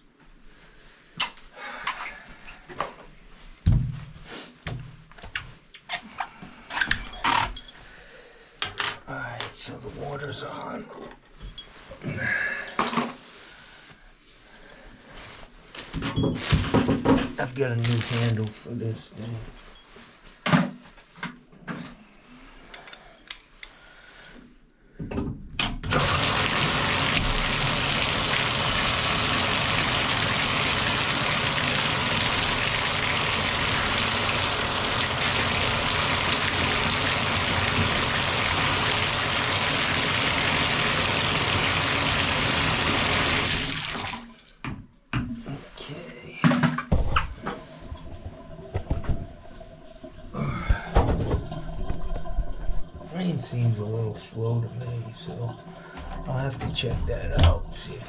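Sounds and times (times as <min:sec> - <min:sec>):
water running into bathtub: 0:25.8 - 0:44.8, 0:47.0 - 0:58.0.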